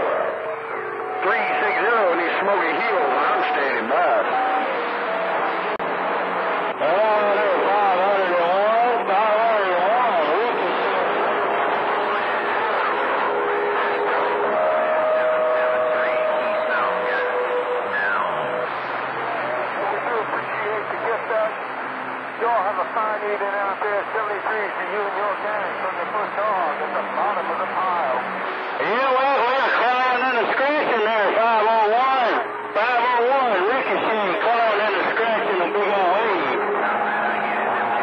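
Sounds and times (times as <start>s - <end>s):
garbled voices in radio static: 1.2s - 5.0s, 6.8s - 21.6s, 22.4s - 38.0s
wavering tone: 11.2s - 19.6s
steady whistling tones: 12.2s - 19.9s.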